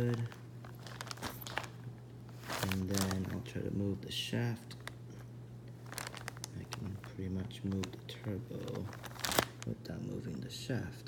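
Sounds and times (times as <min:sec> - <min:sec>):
small handling clicks and crinkles: 0:00.0 - 0:03.5, 0:04.7 - 0:09.8
steady low hum: 0:00.0 - 0:11.0.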